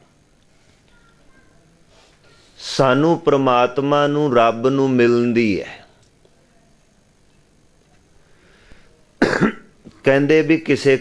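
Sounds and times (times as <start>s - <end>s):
man coughing: 9.2s - 9.7s.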